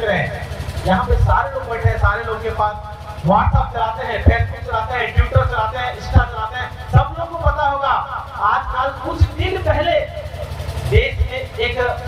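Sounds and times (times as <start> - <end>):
man speaking over loudspeaker: 0.0 - 12.0.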